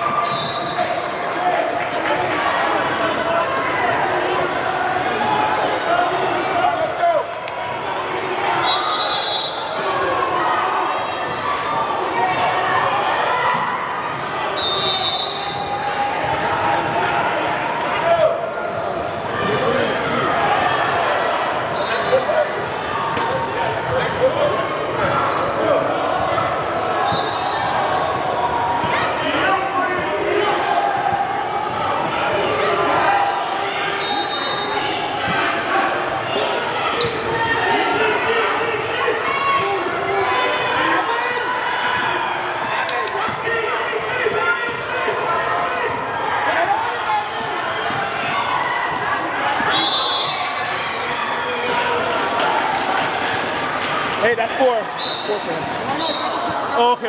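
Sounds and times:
chatter echoing in a gym: 0:00.0 - 0:57.0.

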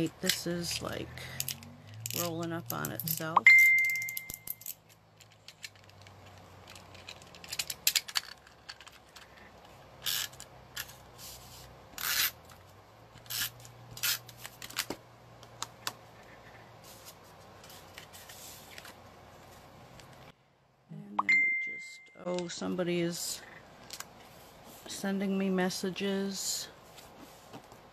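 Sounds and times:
tape runner scratching on paper: 0:10.1 - 0:12.4.

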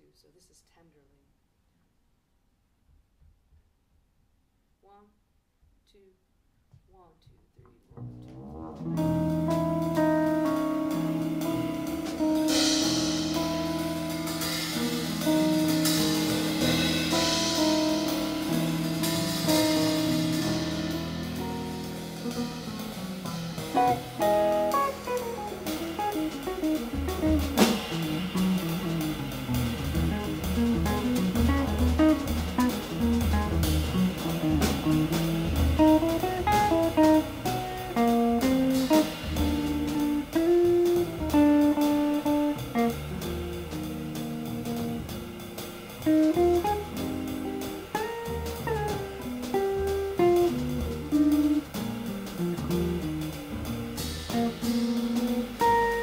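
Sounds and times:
double bass low notes: 0:07.6 - 0:56.0
electric guitar melody: 0:08.0 - 0:56.0
drum kit cymbal strokes: 0:08.8 - 0:56.0.

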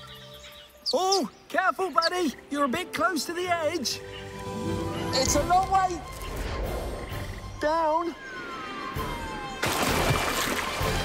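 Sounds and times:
duckling splashing into water: 0:09.6 - 0:11.0.

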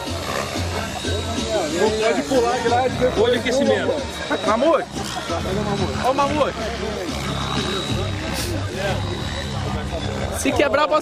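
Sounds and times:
background music: 0:00.0 - 0:11.0
people talking: 0:00.1 - 0:11.0.

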